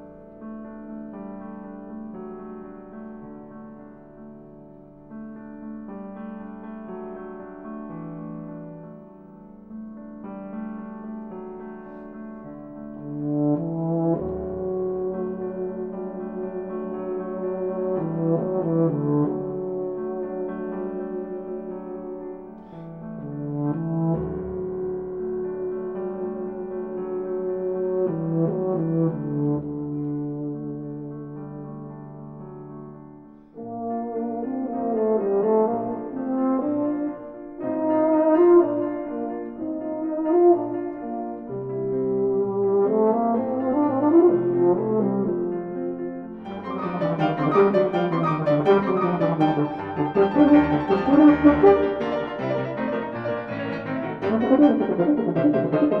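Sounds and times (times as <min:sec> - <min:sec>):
piano accompaniment: 0:00.0 - 0:56.0
euphonium melody: 0:33.6 - 0:56.0.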